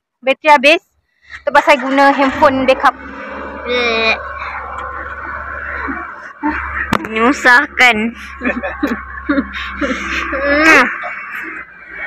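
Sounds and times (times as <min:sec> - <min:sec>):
indistinct background voices: 0:01.4 - 0:12.0
steady low hum: 0:01.5 - 0:12.0.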